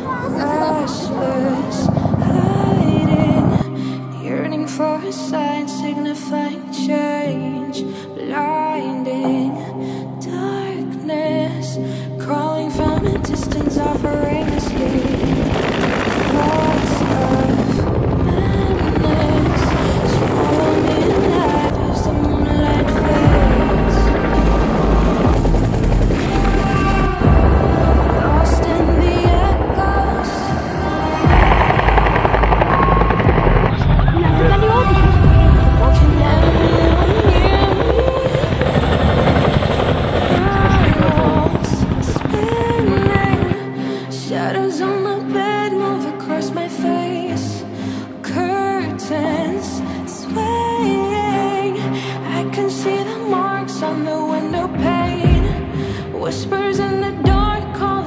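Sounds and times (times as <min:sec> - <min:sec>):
music playing: 0:00.0 - 0:58.0
song with singing: 0:00.0 - 0:58.0
helicopter rotor chopping: 0:12.7 - 0:43.6.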